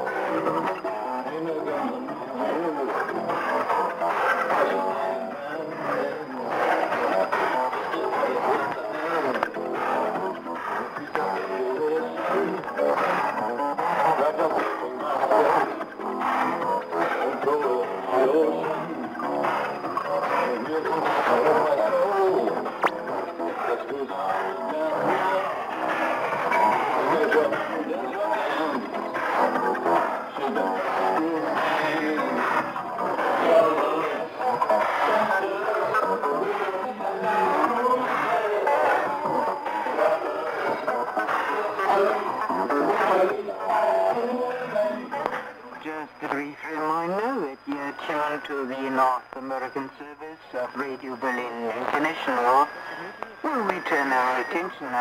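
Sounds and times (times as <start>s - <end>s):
music over shortwave radio: 0.0s - 55.0s
shortwave radio noise: 0.0s - 55.0s.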